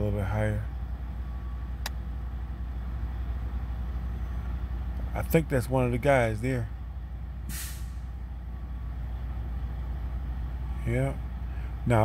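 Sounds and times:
vehicle engine idling: 0.0s - 12.0s
short burst of hiss: 7.5s - 8.0s.

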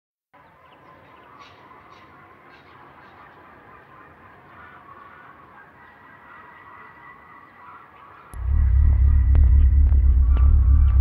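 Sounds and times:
hazy electronic music texture: 8.4s - 11.0s.

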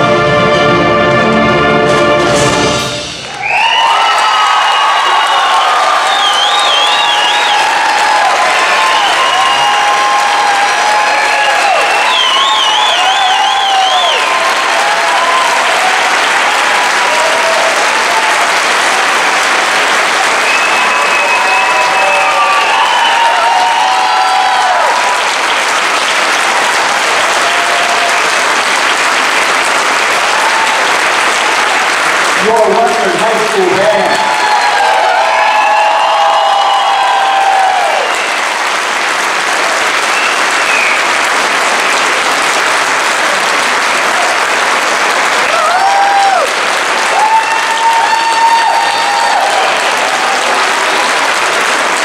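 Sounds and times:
audience applauding and cheering: 0.0s - 52.0s.

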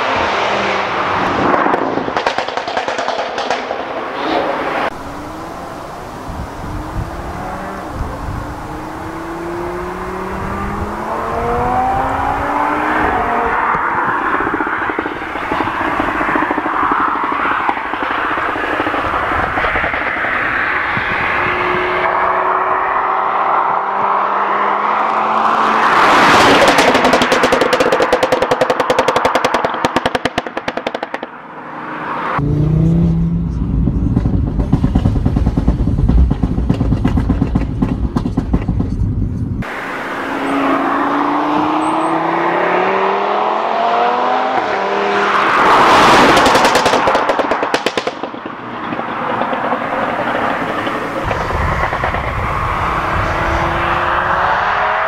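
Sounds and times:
crackling exhaust pops and bangs: 1.4s - 4.1s, 13.7s - 21.1s, 26.3s - 31.4s, 34.0s - 39.8s, 46.0s - 53.7s
car engine accelerating hard: 2.9s - 31.2s, 32.0s - 48.1s, 49.2s - 55.0s.

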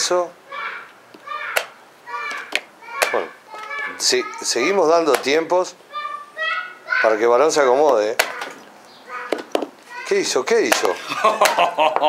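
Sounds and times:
voices talking: 0.0s - 12.0s
chess pieces and clock clacking: 1.1s - 3.8s, 7.8s - 8.6s.

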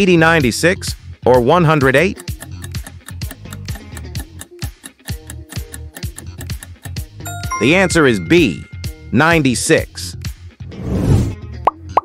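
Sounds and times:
background music: 7.3s - 9.8s.

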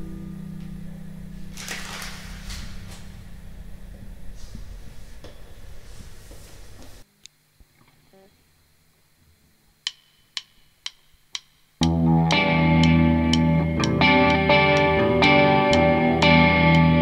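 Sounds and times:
low noisy rumble: 0.0s - 7.1s
sharp count-in clicks: 9.8s - 16.9s
rock band with distorted guitar: 11.8s - 17.0s.

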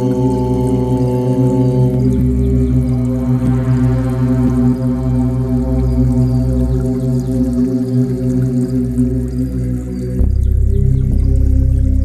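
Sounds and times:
low sustained drone: 0.0s - 12.0s.

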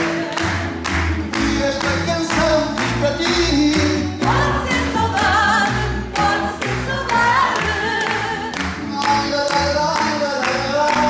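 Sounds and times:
person singing with vibrato: 0.0s - 11.0s
plucked guitars: 0.0s - 11.0s.

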